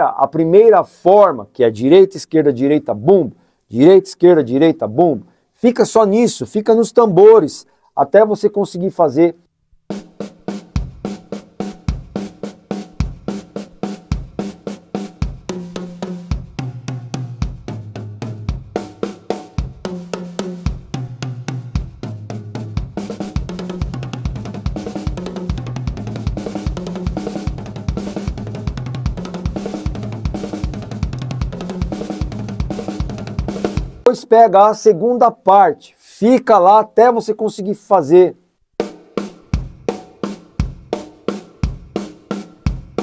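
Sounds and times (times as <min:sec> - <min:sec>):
acoustic drum kit playing: 0:09.9 - 0:34.1, 0:38.8 - 0:43.0
bass drum thumps: 0:10.7 - 0:14.6, 0:15.2 - 0:19.0, 0:19.6 - 0:20.0, 0:20.6 - 0:34.0, 0:39.4 - 0:41.0, 0:41.6 - 0:42.0, 0:42.7 - 0:43.0.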